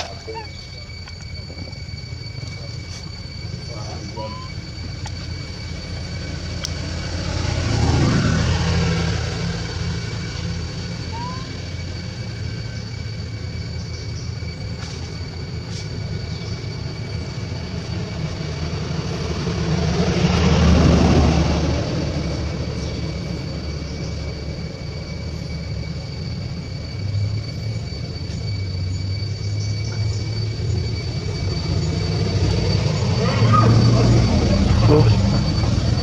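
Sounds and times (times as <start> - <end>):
thin high-pitched whine: 0.0 - 8.3, 9.1 - 19.3, 22.0 - 36.0
passing vehicle engine rumble: 0.0 - 36.0.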